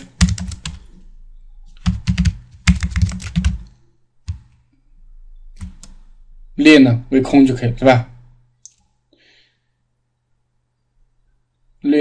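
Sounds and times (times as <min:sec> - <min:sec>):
computer keyboard typing: 0:00.0 - 0:01.0, 0:01.8 - 0:04.6, 0:05.5 - 0:06.1.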